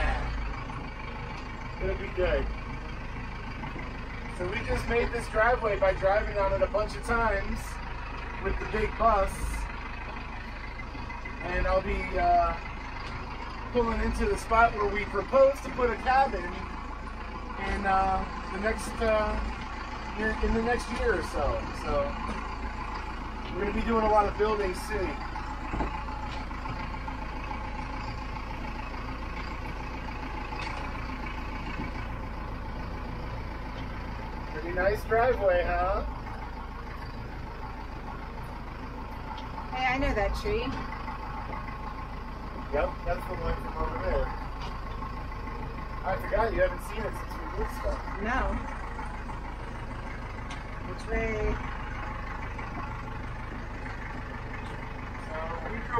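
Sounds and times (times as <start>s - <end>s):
truck engine drone: 0.0s - 55.9s.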